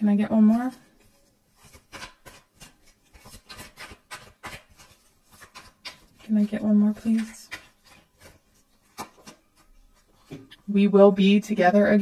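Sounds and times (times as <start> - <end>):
cards being shuffled by hand: 0.4 - 10.7.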